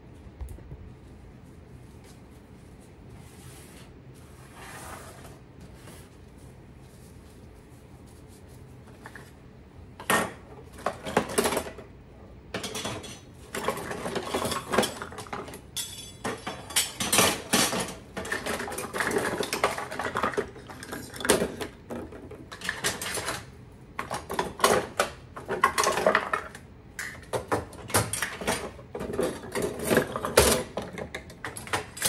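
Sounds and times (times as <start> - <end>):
cutlery clinking in wooden drawer: 12.6 - 21.6.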